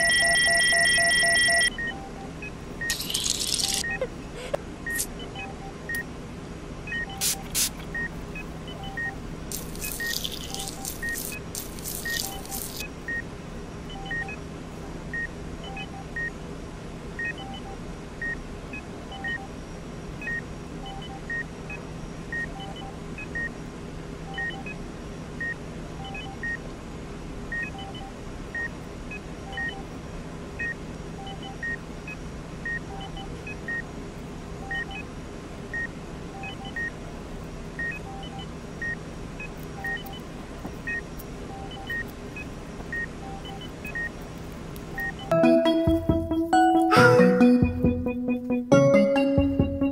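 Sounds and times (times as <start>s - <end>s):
steady low hum: 1.7s - 46.6s
heart monitor beeping: 6.9s - 13.2s, 13.9s - 14.4s, 27.6s - 29.9s, 34.6s - 35.0s, 37.8s - 44.2s.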